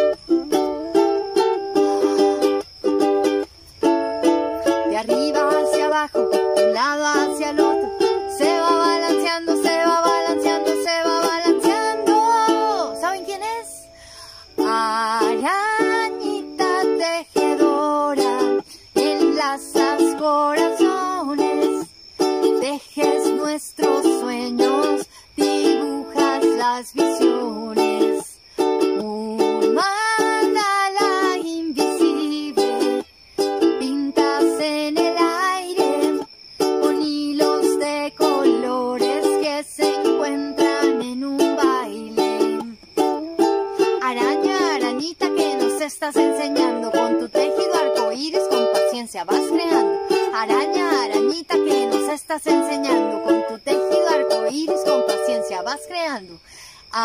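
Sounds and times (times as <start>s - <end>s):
ukulele playing: 0.0s - 56.1s.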